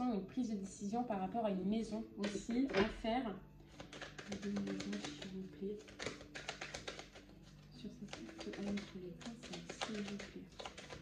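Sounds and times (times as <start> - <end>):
cards being shuffled: 3.6 - 11.0.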